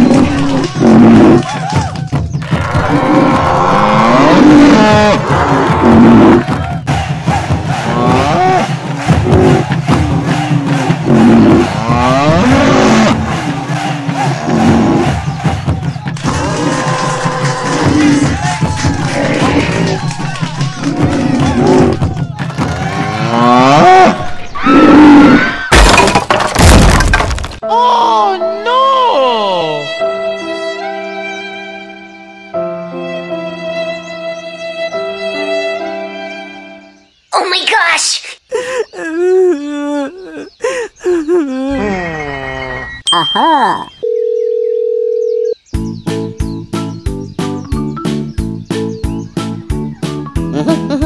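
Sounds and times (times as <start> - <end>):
rhythmic background music: 4.8 - 23.8, 45.7 - 51.0
loud smashing crash: 25.7 - 27.6
steady telephone tone: 43.8 - 45.6
music with steady tones: 45.7 - 51.0.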